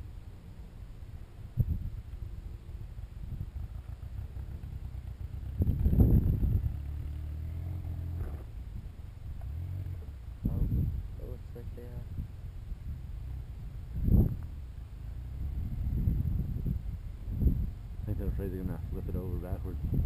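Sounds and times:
vehicle engine rumbling: 0:00.0 - 0:20.0.

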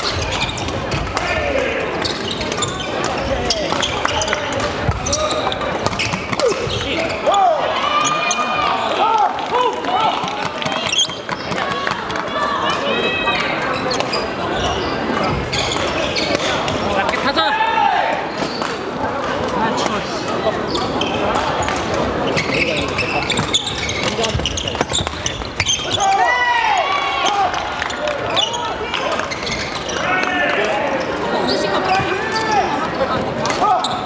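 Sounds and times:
shoes squeaking on wooden floor: 0:00.0 - 0:01.2, 0:02.0 - 0:08.8, 0:13.6 - 0:16.9, 0:20.6 - 0:26.4, 0:27.8 - 0:32.8
echoing background chatter: 0:00.0 - 0:34.0.

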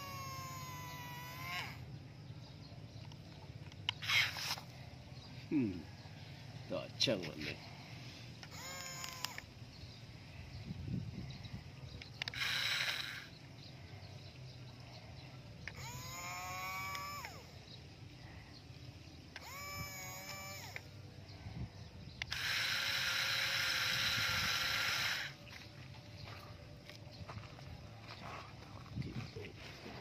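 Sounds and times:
rising and falling pitched calls: 0:00.0 - 0:02.0
toy electric motor whirring: 0:00.0 - 0:02.0, 0:03.0 - 0:04.8, 0:07.3 - 0:10.0, 0:10.6 - 0:13.8, 0:15.5 - 0:17.8, 0:19.1 - 0:25.8.

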